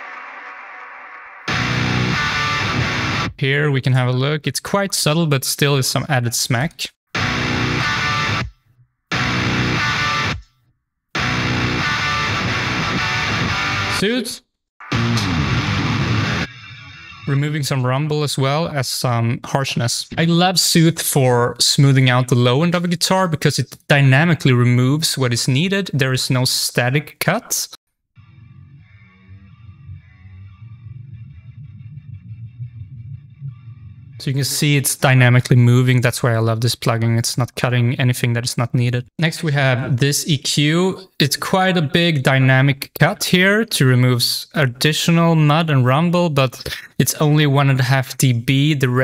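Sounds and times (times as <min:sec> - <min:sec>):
distorted metal rhythm guitars: 0:01.5 - 0:03.4, 0:07.2 - 0:10.4, 0:11.2 - 0:14.0, 0:14.8 - 0:17.4.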